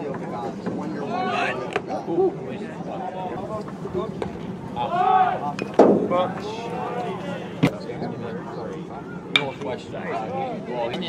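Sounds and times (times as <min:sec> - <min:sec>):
spectators chatting: 0:00.0 - 0:11.0.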